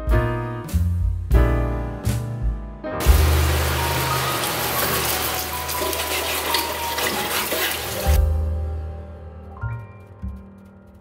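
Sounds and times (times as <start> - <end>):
low background music: 0.0 - 11.0
rushing noise like running water: 3.0 - 8.2.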